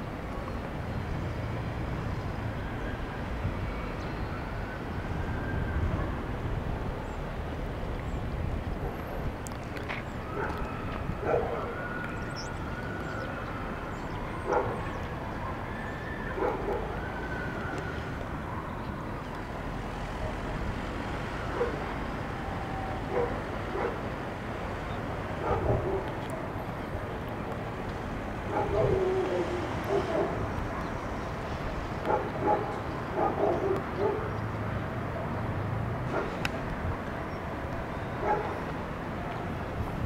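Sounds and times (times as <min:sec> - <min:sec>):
distant city traffic hum: 0:00.0 - 0:40.0
dog barking: 0:10.4 - 0:10.6, 0:11.2 - 0:11.7, 0:14.5 - 0:14.8, 0:16.4 - 0:16.9, 0:21.6 - 0:21.8, 0:23.1 - 0:24.0, 0:25.4 - 0:26.1, 0:28.5 - 0:30.9, 0:32.1 - 0:34.4, 0:36.1 - 0:36.3, 0:38.2 - 0:38.6.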